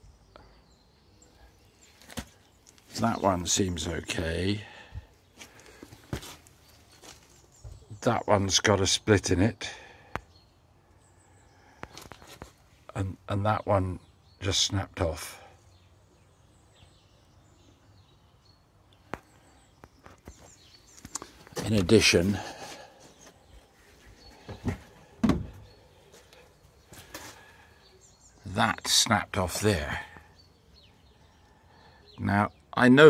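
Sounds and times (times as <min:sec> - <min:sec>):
short knocks and bumps: 0:24.4 - 0:25.7.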